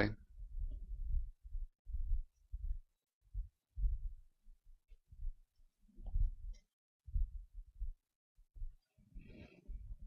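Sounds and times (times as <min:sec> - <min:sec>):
faint low thuds: 0:00.3 - 0:04.2, 0:06.0 - 0:08.0.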